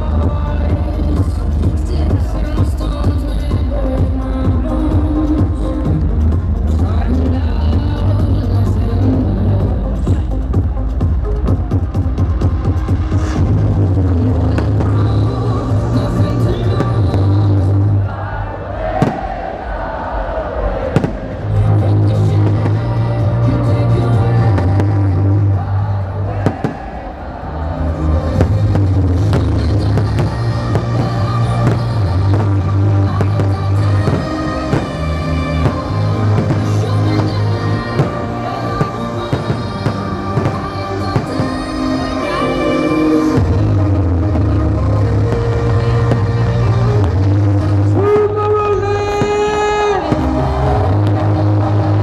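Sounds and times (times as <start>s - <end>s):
electronic dance music: 0.0s - 19.1s, 21.0s - 52.0s
fireworks bangs: 18.8s - 19.8s, 20.6s - 22.9s, 26.3s - 27.4s, 28.2s - 42.6s.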